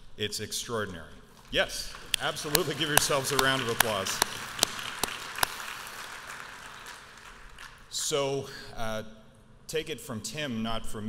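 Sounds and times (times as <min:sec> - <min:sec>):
audience applause: 0:01.5 - 0:08.2
sharp hand claps: 0:01.7 - 0:08.2.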